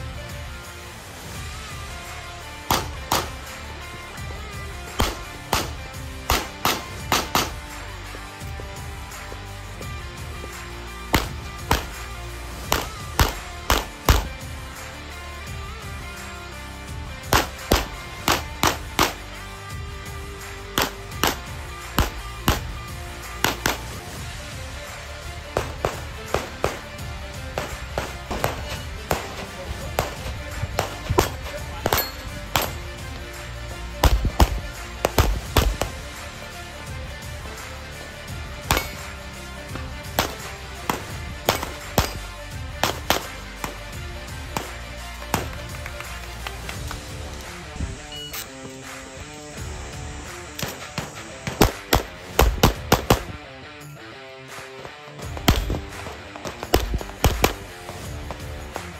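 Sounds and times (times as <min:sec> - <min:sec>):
background music: 0:00.0 - 0:58.9
pistol shots: 0:02.6 - 0:03.6, 0:04.8 - 0:08.2, 0:10.5 - 0:14.6, 0:17.2 - 0:19.4, 0:20.4 - 0:24.2, 0:24.9 - 0:36.3, 0:38.6 - 0:47.0, 0:50.5 - 0:53.4, 0:54.8 - 0:58.5.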